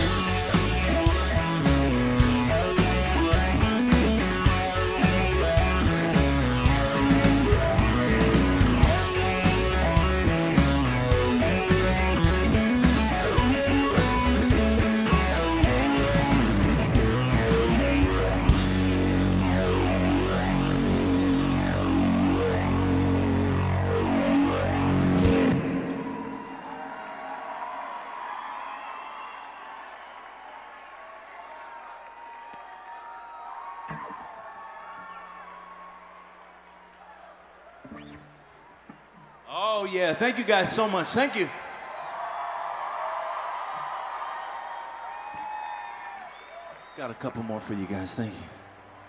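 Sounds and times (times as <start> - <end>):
rock band playing: 0.0 - 26.9
crowd cheering: 0.0 - 49.0.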